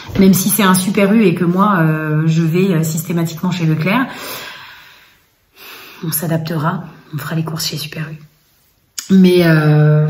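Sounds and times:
woman breathing: 4.1 - 6.1.

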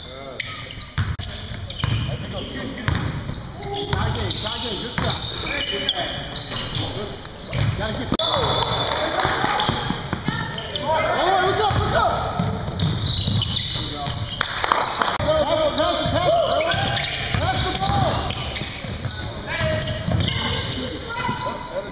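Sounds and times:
sneakers squeaking: 0.0 - 21.9
players calling out: 0.4 - 21.9
basketball bouncing: 1.0 - 2.2, 2.9 - 3.2, 7.6 - 10.7, 11.4 - 21.4.

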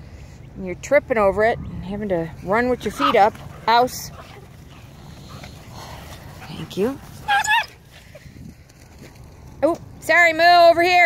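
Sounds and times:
dog yelping: 7.2 - 8.2.

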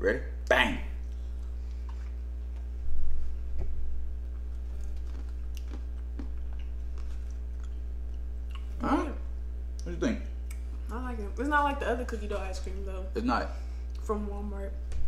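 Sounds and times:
steady low hum: 0.0 - 15.0
people chewing ice cream: 1.0 - 2.7, 4.3 - 9.2.

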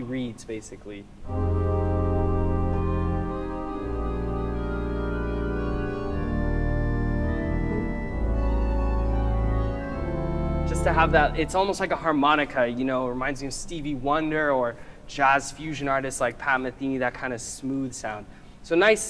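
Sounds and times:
pipe organ playing slow chords: 1.2 - 13.7.

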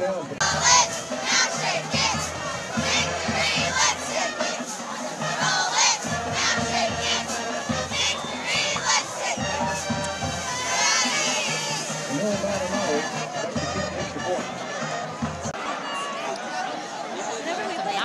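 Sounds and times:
crowd noise: 0.0 - 18.0
girls shouting a cheer: 5.3 - 12.0.

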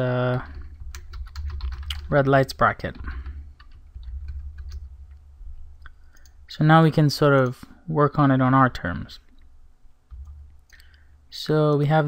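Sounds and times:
low steady hum: 0.0 - 12.0
computer keyboard keystrokes: 0.5 - 2.1, 3.6 - 5.2.

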